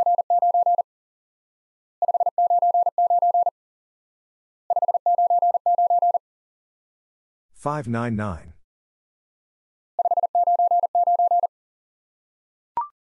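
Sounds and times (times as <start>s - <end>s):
morse code beeps: 0.0s - 0.8s, 2.0s - 3.5s, 4.7s - 6.2s, 10.0s - 11.5s.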